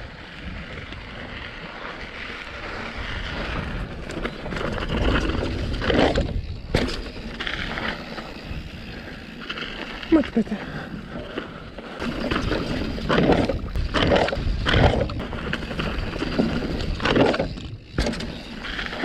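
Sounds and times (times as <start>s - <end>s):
bike tyres rolling over gravel: 0.0s - 19.0s
wind on microphone: 12.0s - 18.0s.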